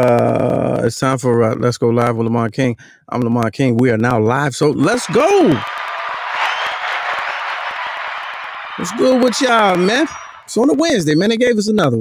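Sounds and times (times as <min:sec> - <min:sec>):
crowd applause: 0:04.7 - 0:11.0.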